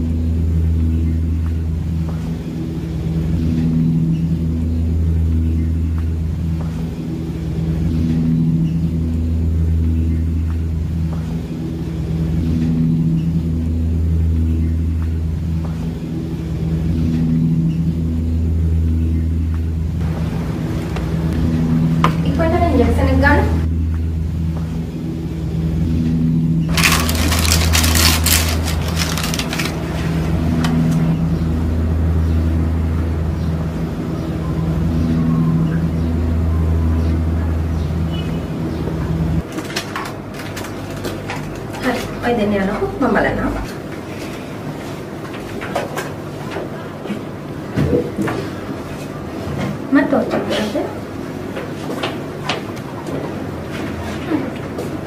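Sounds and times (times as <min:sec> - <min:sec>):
low droning tone: 0:00.0 - 0:39.5
rustling noise: 0:26.7 - 0:30.4.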